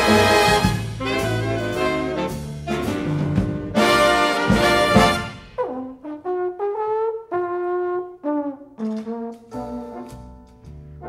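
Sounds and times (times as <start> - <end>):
jazz big band playing: 0.0 - 11.0
solo trombone: 0.0 - 11.0.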